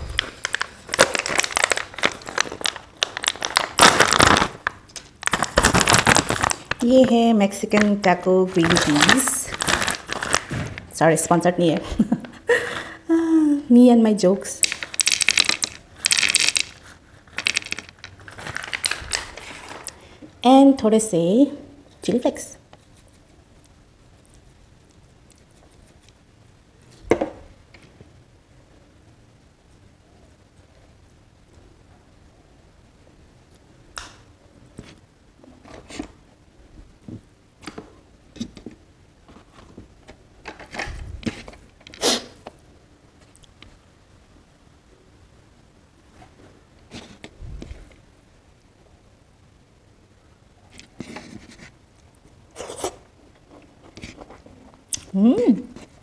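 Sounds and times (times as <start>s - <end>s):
dried peas clattering onto plate: 14.6s - 19.4s.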